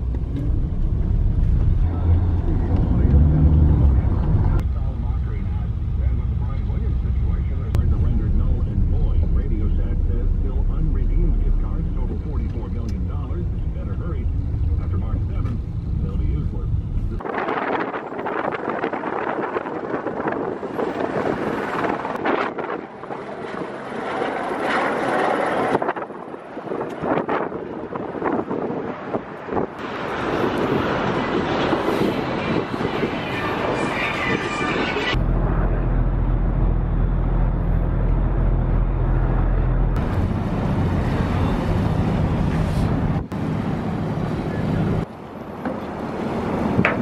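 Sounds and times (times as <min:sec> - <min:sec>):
ferry engine drone: 0:00.0 - 0:17.6, 0:28.8 - 0:47.0
wind on microphone: 0:06.1 - 0:35.7.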